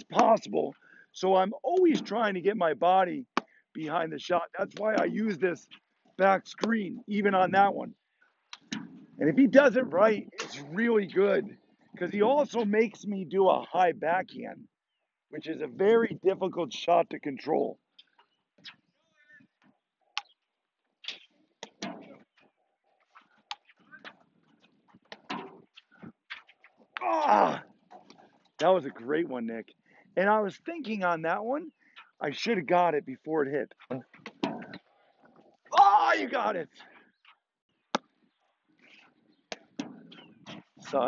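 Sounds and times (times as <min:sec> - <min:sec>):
ball bouncing: 0:25.1 - 0:25.6.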